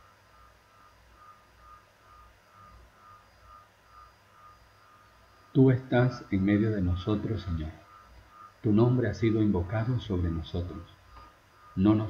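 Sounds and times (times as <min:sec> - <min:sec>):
weak high beeps: 0:00.0 - 0:12.0.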